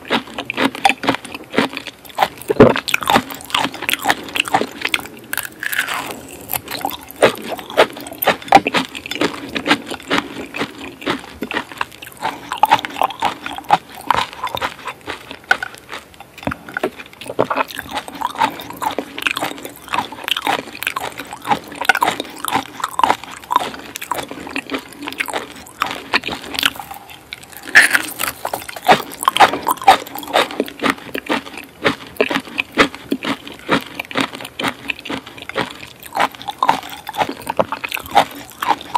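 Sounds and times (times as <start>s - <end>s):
close-miked chewing and biting: 0.0s - 38.9s.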